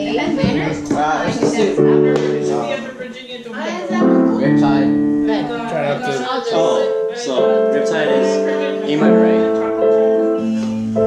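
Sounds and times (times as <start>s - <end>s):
acoustic guitar chords: 0.0s - 11.0s
digital piano chords: 0.0s - 11.0s
person's voice: 0.0s - 11.0s.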